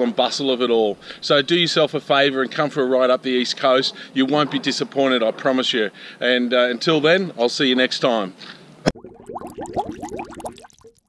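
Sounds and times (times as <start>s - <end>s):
rising bubbling bloops: 8.9s - 11.0s.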